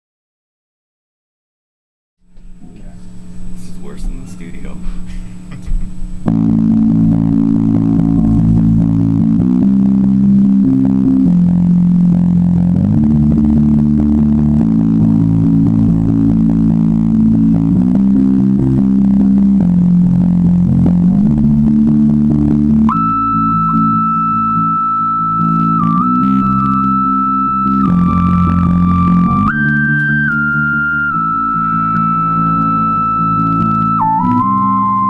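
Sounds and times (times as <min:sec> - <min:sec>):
organ-like keyboard chords: 0:02.8 - 0:35.0
bass guitar: 0:04.8 - 0:35.0
high held note: 0:06.3 - 0:35.0.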